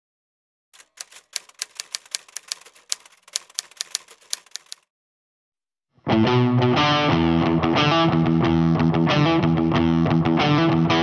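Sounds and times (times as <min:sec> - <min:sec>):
typewriter keys clacking: 0:00.8 - 0:04.8.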